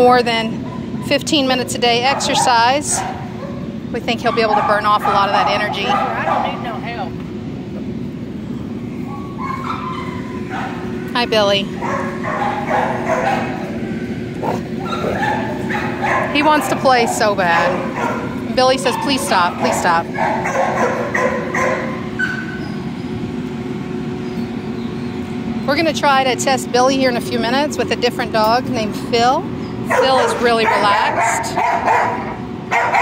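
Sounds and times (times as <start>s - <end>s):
steady low rumble: 0.0s - 31.6s
steady low hum: 0.0s - 33.0s
dogs barking: 0.5s - 7.0s, 9.0s - 11.0s, 11.7s - 13.8s, 14.4s - 22.8s, 29.8s - 33.0s
higher-pitched dog calls: 9.1s - 10.8s, 11.8s - 13.6s, 14.4s - 16.9s
rough dog vocalisation: 14.4s - 16.4s.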